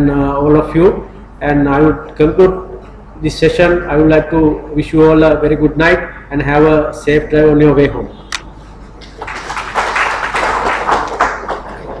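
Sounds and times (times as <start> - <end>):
audience applauding: 9.0 - 12.0.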